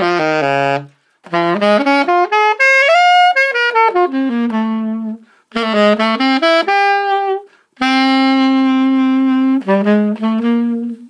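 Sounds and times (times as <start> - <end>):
alto saxophone playing: 0.0 - 11.0
player taking breath: 5.2 - 5.5, 7.5 - 7.8.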